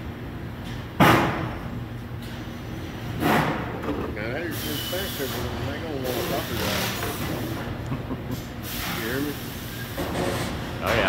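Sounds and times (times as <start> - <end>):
low machinery hum: 0.0 - 11.0.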